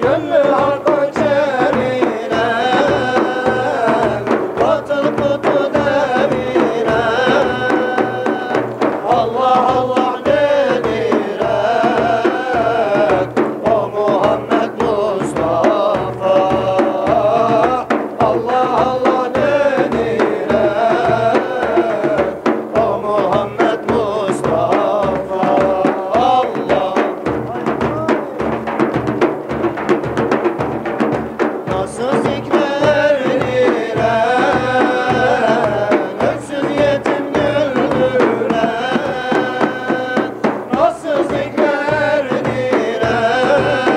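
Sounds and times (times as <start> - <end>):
frame drums beating: 0.0 - 43.9
men singing a hymn: 0.0 - 43.9.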